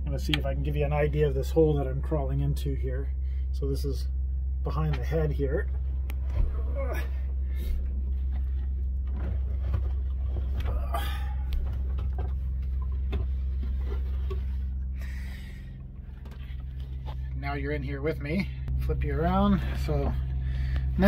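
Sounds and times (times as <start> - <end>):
steady low hum: 0.0 - 21.0
man grunting: 6.6 - 7.2.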